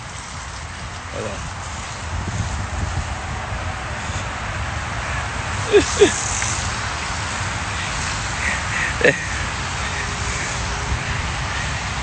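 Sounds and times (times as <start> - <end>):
hose spraying water on pavement: 0.0 - 12.0.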